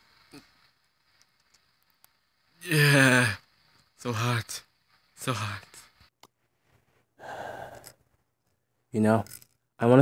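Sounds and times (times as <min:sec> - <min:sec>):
person speaking: 0:04.0 - 0:05.9
person sighing: 0:07.2 - 0:08.0.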